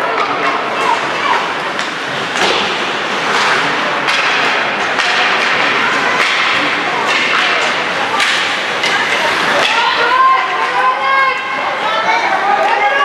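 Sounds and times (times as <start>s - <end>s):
hockey sticks knocking puck: 0.0s - 11.6s
arena voices: 0.0s - 13.0s
skates scraping ice: 0.0s - 13.0s.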